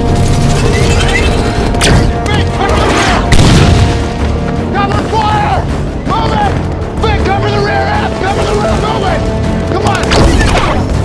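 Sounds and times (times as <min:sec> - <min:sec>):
rumble of explosions and impacts: 0:00.0 - 0:07.2
dramatic score music: 0:00.0 - 0:11.0.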